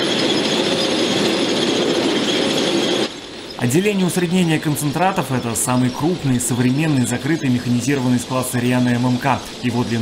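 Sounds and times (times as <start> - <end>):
high machine whine: 0.0 - 10.0.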